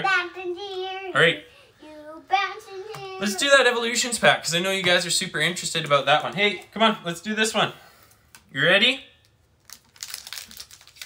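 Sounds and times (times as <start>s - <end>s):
foil wrapper crinkling: 9.4s - 11.0s.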